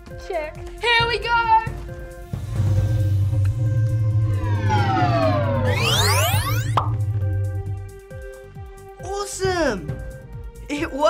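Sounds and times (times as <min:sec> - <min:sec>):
music with low drone: 0:01.6 - 0:09.1
rising electronic sweep: 0:02.5 - 0:08.4.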